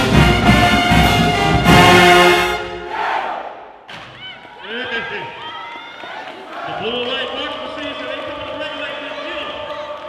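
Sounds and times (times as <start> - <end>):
people calling out and talking: 4.0 - 10.0.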